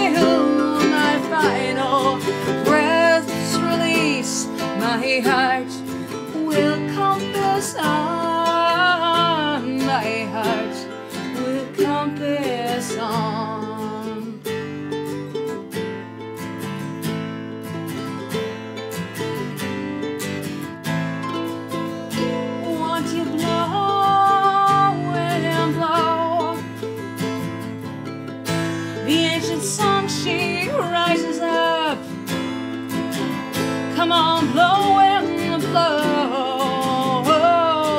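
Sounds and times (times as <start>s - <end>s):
woman singing: 0.0s - 14.8s, 22.1s - 27.7s, 28.7s - 37.9s
acoustic guitar strumming: 0.0s - 37.9s
ukulele playing: 0.0s - 37.9s.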